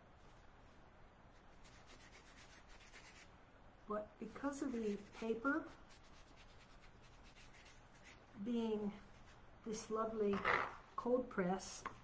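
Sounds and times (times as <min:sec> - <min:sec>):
paintbrush scratching on paper: 0:01.3 - 0:03.3, 0:04.3 - 0:08.4.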